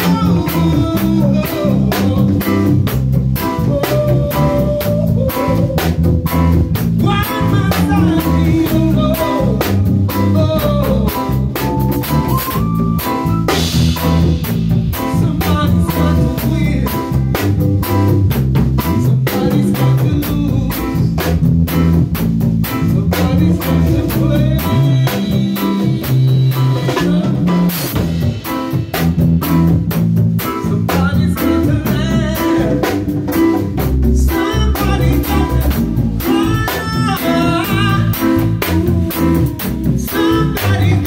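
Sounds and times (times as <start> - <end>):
congas: 0.0 - 41.0
drum kit steady beat: 0.0 - 41.0
electric bass: 0.0 - 41.0
keyboard: 0.0 - 41.0.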